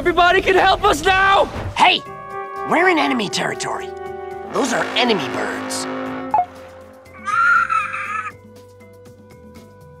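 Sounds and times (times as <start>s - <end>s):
cartoon bird squawk: 7.2s - 8.4s.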